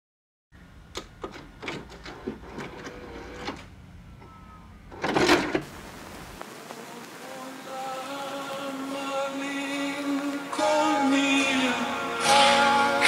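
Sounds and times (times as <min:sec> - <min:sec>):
low steady hum: 0:00.6 - 0:07.7
mechanical clicks and clunks: 0:00.9 - 0:05.7.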